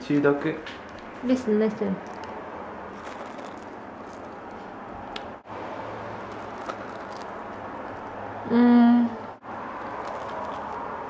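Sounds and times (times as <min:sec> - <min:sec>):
marshmallow being chewed: 0:02.0 - 0:04.6, 0:09.8 - 0:10.9.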